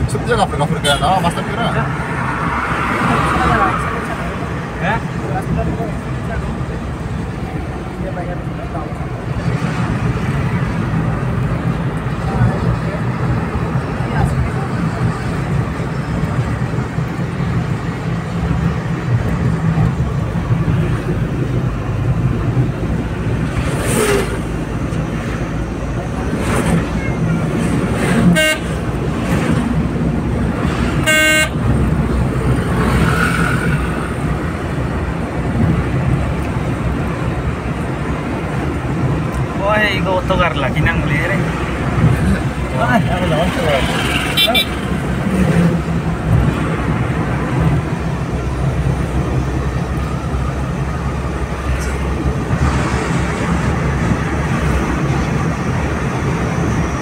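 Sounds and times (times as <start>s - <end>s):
vehicle engine and road rumble: 0.0s - 57.0s
vehicle horn honks: 28.3s - 28.8s, 31.0s - 31.6s, 44.3s - 44.8s.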